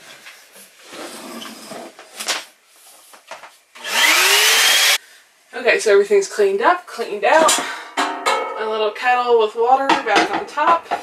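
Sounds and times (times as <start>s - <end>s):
vacuum cleaner motor whine: 3.8s - 5.0s.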